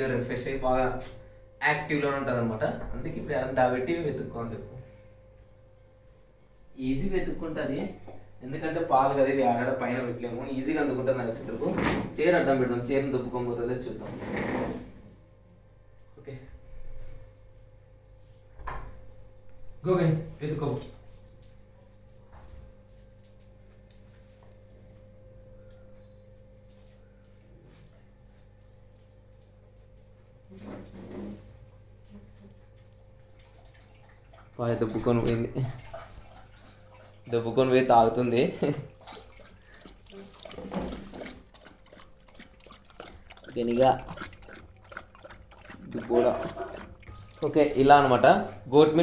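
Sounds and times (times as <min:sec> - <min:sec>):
steady low hum: 0:00.0 - 0:49.0
dog lapping from a bowl: 0:33.3 - 0:48.2.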